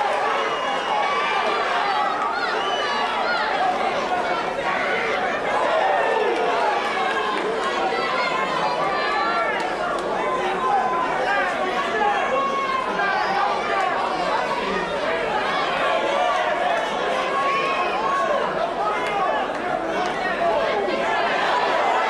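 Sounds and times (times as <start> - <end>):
crowd chatter and shouting: 0.0 - 22.0.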